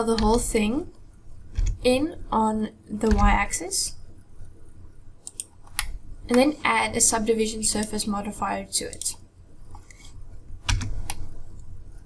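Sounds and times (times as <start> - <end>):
keyboard and mouse clicks: 0.1 - 0.5, 1.5 - 1.8, 3.0 - 3.4, 5.2 - 6.5, 8.9 - 11.3.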